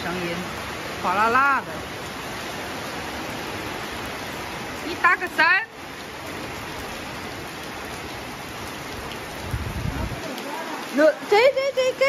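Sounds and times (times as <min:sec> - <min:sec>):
heavy rain on a shed roof: 0:00.0 - 0:12.0.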